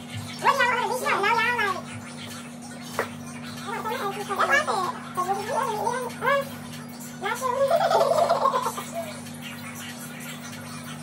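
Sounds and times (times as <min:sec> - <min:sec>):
woman laughing: 0:07.5 - 0:09.1.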